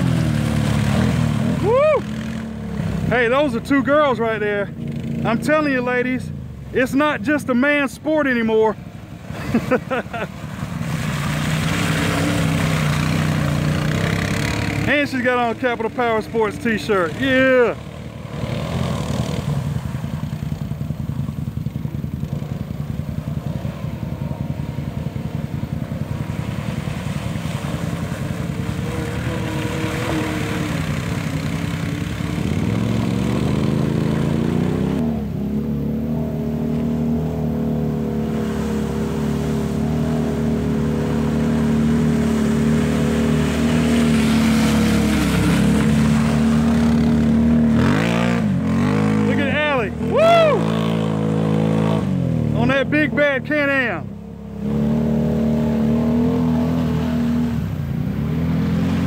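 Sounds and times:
atv engines revving: 0:00.0 - 0:59.0.

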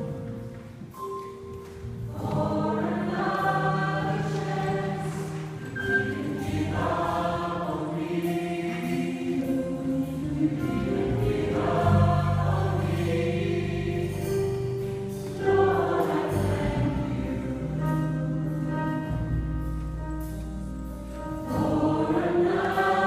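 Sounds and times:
gospel choir singing: 0:01.8 - 0:19.4, 0:21.3 - 0:23.0.

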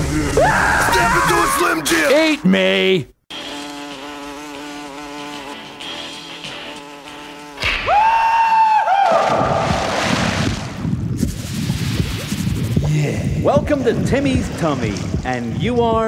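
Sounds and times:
buzzing drone: 0:03.3 - 0:07.7.

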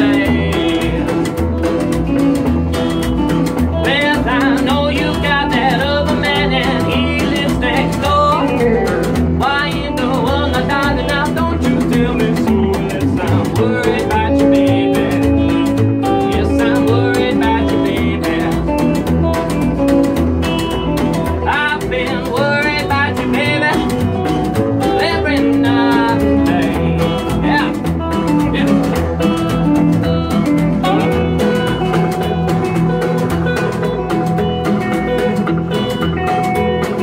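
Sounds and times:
man singing: 0:00.0 - 0:01.7, 0:03.7 - 0:19.4, 0:21.3 - 0:32.5
acoustic guitar strumming: 0:00.0 - 0:37.0
electric guitar: 0:00.0 - 0:37.0
plucked upright bass: 0:00.0 - 0:37.0.

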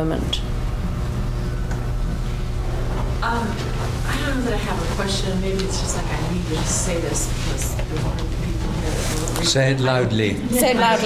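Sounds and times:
room background rumble and hum: 0:00.0 - 0:11.0.

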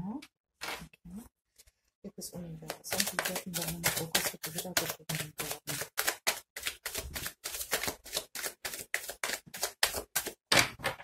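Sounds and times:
cards being shuffled by hand: 0:02.6 - 0:10.5.

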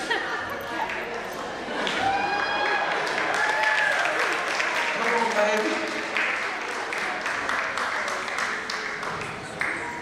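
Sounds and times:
crowd voices: 0:00.0 - 0:10.0
audience applause: 0:00.8 - 0:10.0.

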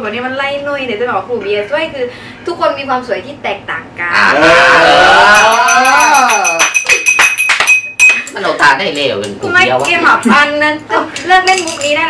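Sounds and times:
spoon clinking in a glass: 0:05.4 - 0:08.4.

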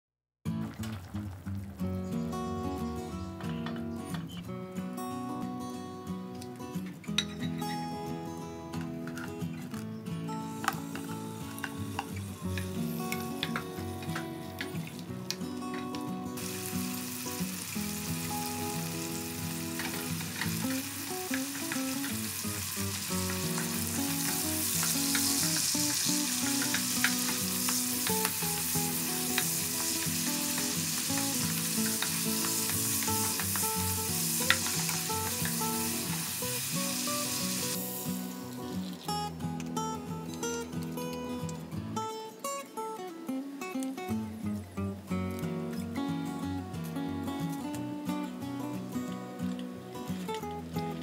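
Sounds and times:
background music: 0:10.2 - 0:44.5
shrimp sizzling in oil: 0:10.5 - 0:15.1, 0:16.3 - 0:39.0.

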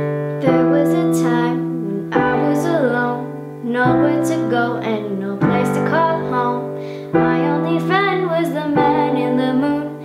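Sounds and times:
electronic keyboard chords: 0:00.0 - 0:10.0
girl singing softly: 0:00.0 - 0:10.0.

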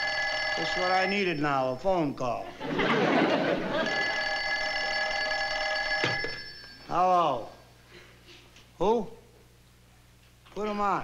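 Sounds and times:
telephone bell ringing: 0:00.0 - 0:01.6, 0:02.8 - 0:07.2.

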